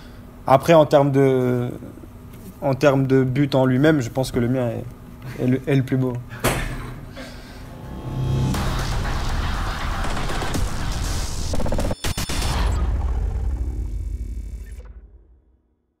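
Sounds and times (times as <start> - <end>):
low rumble: 7.6 - 10.9
sharp hit: 7.6 - 15.5
cinematic music and effects: 7.6 - 15.6.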